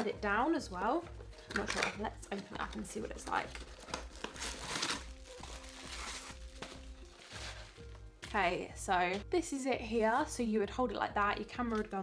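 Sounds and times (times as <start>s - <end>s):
quiet background music: 0.0s - 12.0s
packaging rustling and clicking: 1.4s - 8.1s.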